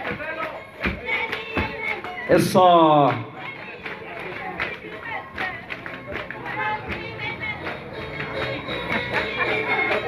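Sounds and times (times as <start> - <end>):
percussion beat: 0.0 - 10.0
voices: 0.0 - 10.0.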